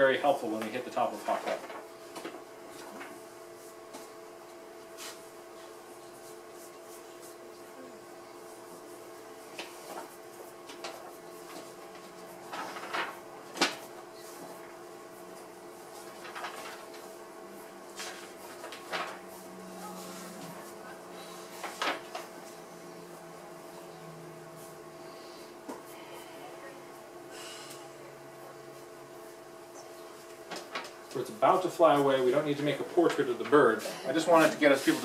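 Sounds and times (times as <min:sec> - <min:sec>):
steady hum: 0:00.0 - 0:35.0
paper rustling: 0:09.6 - 0:14.6, 0:15.9 - 0:17.1, 0:17.9 - 0:20.8, 0:21.4 - 0:22.6, 0:30.5 - 0:31.2.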